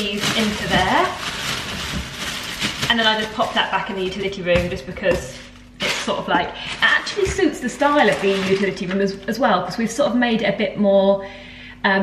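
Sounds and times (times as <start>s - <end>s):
plastic bag crinkling: 0.0s - 9.4s.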